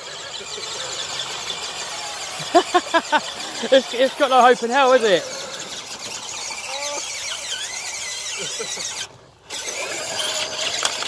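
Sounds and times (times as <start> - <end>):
electric motors whining: 0.0 - 11.0
man laughing: 2.1 - 5.4, 8.2 - 9.1.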